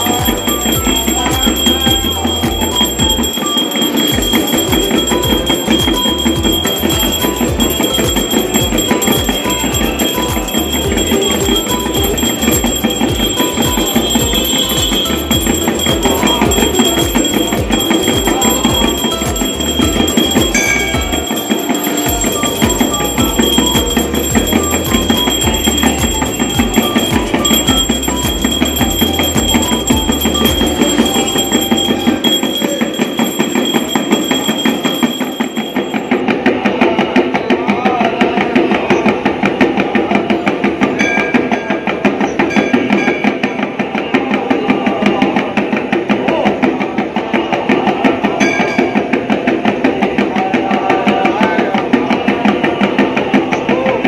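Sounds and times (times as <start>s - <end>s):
steady high ringing: 0.0s - 37.4s
temple bells and percussion clanging: 0.0s - 37.4s.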